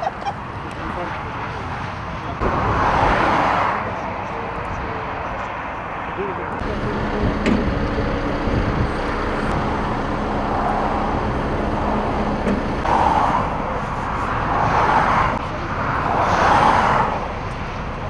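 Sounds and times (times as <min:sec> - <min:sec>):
engine hum: 0:00.0 - 0:18.0
motorway traffic rumble: 0:00.0 - 0:18.0
vehicles swishing by: 0:00.0 - 0:18.0.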